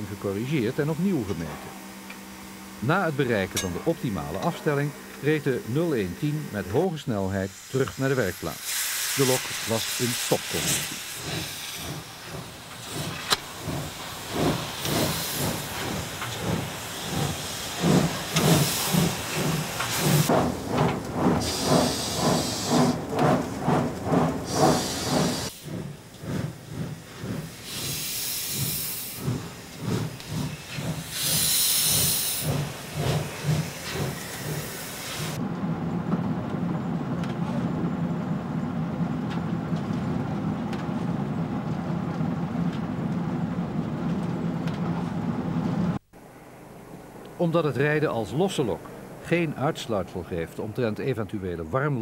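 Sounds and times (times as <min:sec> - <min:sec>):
steam hissing: 0:00.0 - 0:35.4
steam locomotive exhaust beating: 0:00.0 - 0:46.1.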